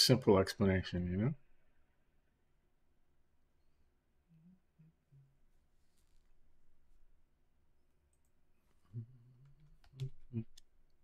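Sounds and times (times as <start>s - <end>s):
man humming: 8.8s - 10.6s
man making throaty sounds: 10.0s - 10.6s.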